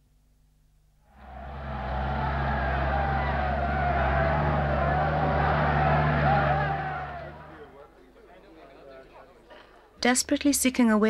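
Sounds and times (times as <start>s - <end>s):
vehicle engines running: 1.2s - 7.8s
crowd noise: 1.2s - 9.5s.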